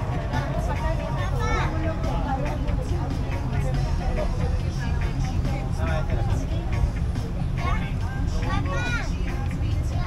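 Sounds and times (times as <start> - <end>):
bus engine rumble: 0.0 - 10.0
passengers talking: 0.0 - 10.0.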